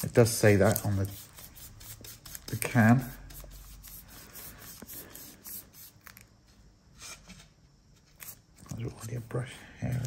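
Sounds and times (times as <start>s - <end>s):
paintbrush brushing strokes: 0.4s - 6.2s.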